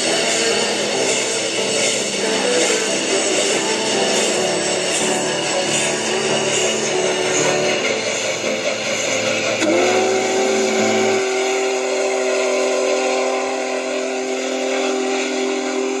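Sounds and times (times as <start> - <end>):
steam locomotive whistle: 0.0 - 16.0.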